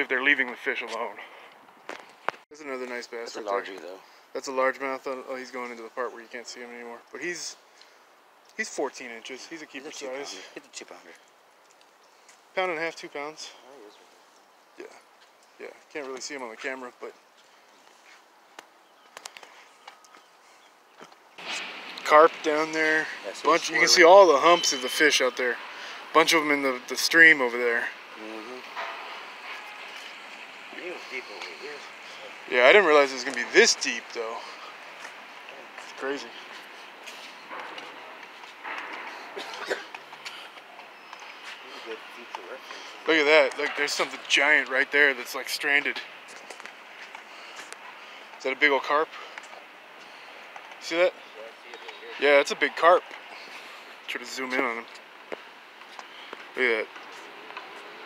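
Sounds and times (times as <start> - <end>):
faint outdoor background noise: 0.0 - 58.0.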